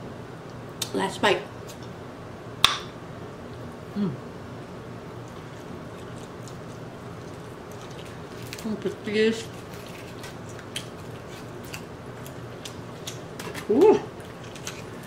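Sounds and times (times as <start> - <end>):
steady low hum: 0.0 - 15.0
person murmuring: 3.9 - 4.2, 13.6 - 14.1
chewing clicks and smacks: 5.2 - 8.6, 9.6 - 15.0.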